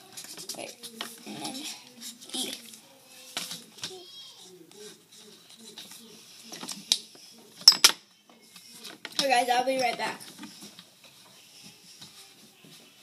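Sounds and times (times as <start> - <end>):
children's voices: 0.0 - 4.9.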